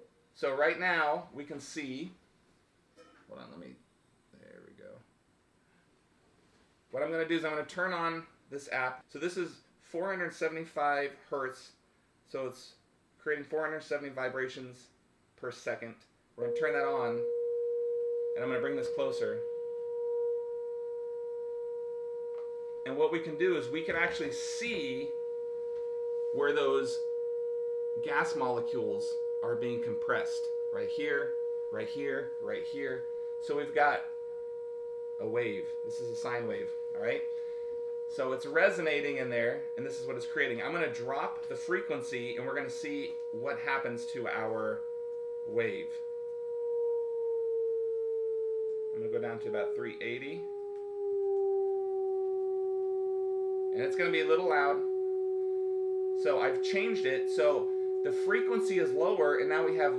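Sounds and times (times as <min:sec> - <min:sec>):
steady sine tone: 0:00.0 - 0:02.2, 0:06.9 - 0:59.9.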